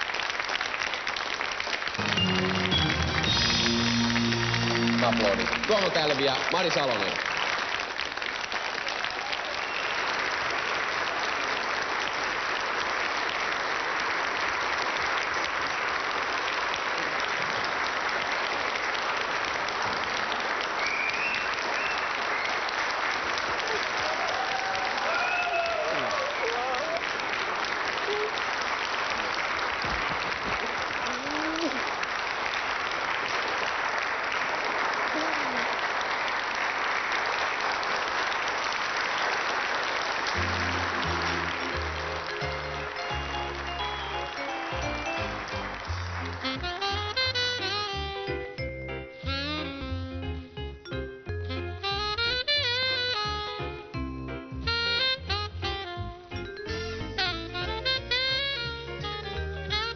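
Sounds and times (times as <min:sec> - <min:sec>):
audience applauding: 0:00.0 - 0:48.4.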